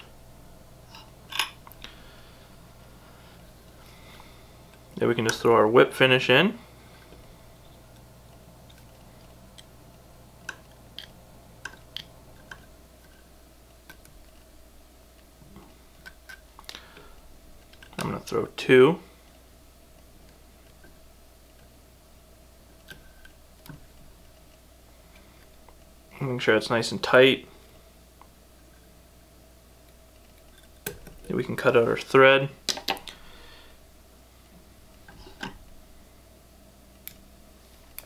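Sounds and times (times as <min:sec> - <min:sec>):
steady low hum: 0:00.0 - 0:38.0
person speaking: 0:04.9 - 0:06.8, 0:31.2 - 0:32.7.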